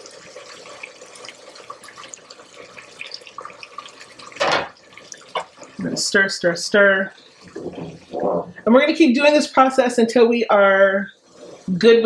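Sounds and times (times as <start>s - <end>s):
rice simmering and bubbling: 0.0s - 8.5s
stock splashing into pot: 4.3s - 5.6s.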